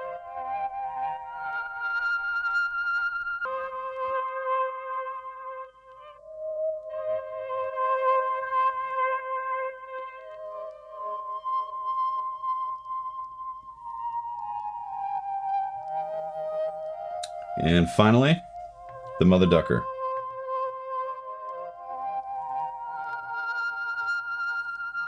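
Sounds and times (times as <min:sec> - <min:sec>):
filtered keyboard chords: 0:00.0 - 0:25.0.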